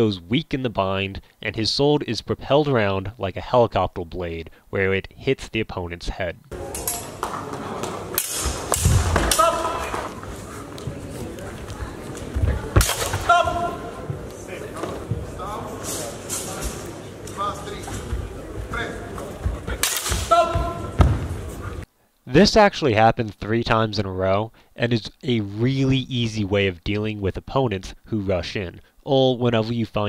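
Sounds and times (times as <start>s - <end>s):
voices in echoing hall: 6.5s - 21.8s
short shouts: 9.2s - 10.0s, 13.2s - 13.9s, 20.2s - 21.0s.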